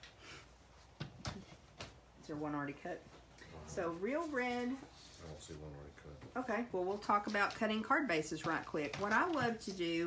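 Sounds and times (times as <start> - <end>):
faint paper rustle: 3.2 - 5.9, 6.8 - 10.0.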